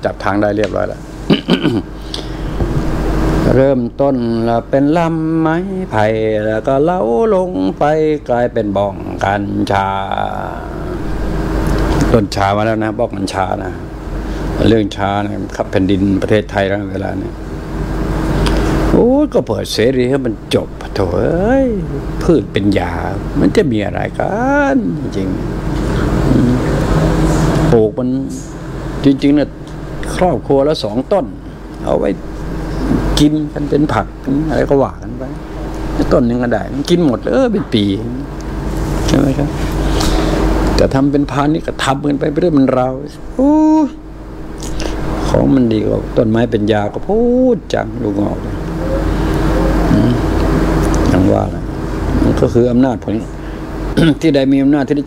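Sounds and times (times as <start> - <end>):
man speaking: 0.0 - 2.4, 3.4 - 11.2, 11.8 - 13.9, 14.5 - 17.4, 18.8 - 38.4, 39.0 - 39.8, 40.8 - 44.0, 44.6 - 55.0
motor humming: 0.0 - 55.0.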